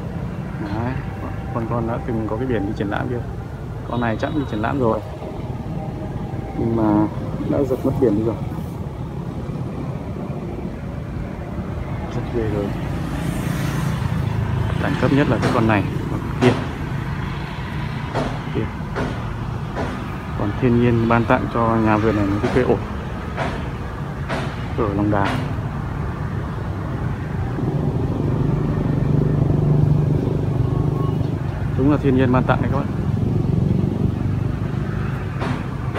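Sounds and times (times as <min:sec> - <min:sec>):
road traffic hum: 0:00.0 - 0:35.9
man talking: 0:00.6 - 0:03.3, 0:03.9 - 0:05.2, 0:06.5 - 0:08.6, 0:12.0 - 0:12.8, 0:14.7 - 0:16.7, 0:20.4 - 0:22.8, 0:31.8 - 0:32.9.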